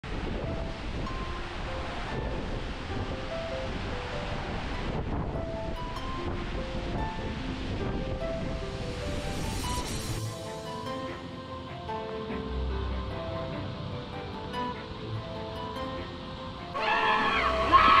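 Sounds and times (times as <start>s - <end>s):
waterfall rushing: 0.1s - 18.0s
sparse single-note music: 0.4s - 8.8s, 10.2s - 18.0s.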